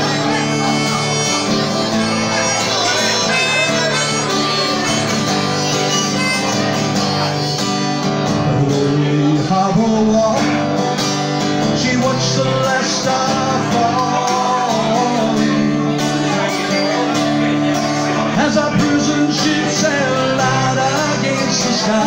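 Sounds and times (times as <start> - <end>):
harmonica melody: 0.0 - 8.6
strummed acoustic guitar: 0.0 - 22.0.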